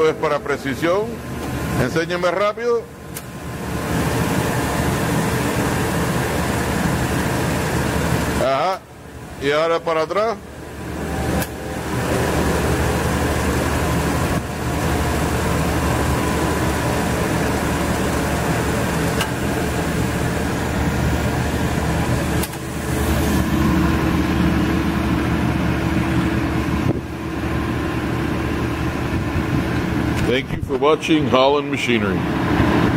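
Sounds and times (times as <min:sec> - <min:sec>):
machine hum of plate shear: 0:00.0 - 0:32.9
higher motor tone: 0:02.9 - 0:32.9.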